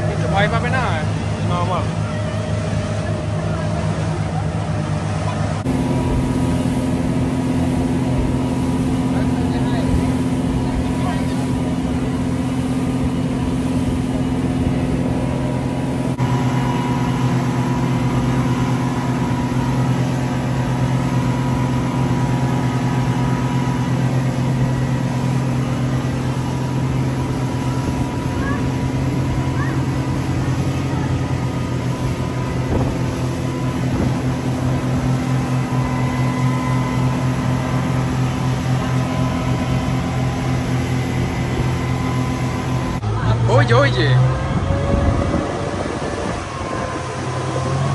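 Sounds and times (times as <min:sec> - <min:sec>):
motorboat engines droning: 0:00.0 - 0:47.9
water rushing along hull: 0:00.0 - 0:47.9.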